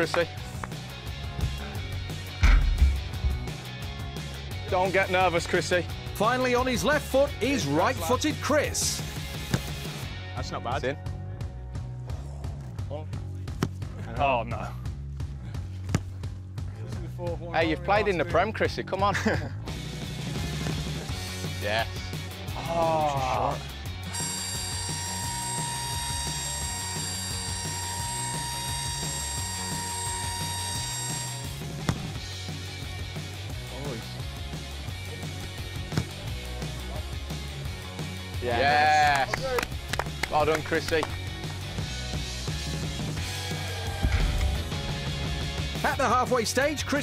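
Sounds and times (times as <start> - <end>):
background music with bass: 0.0 - 47.0
football kicked thud: 2.4 - 3.5, 9.5 - 9.8, 13.5 - 13.8, 15.8 - 16.2, 31.8 - 32.2, 35.9 - 36.2.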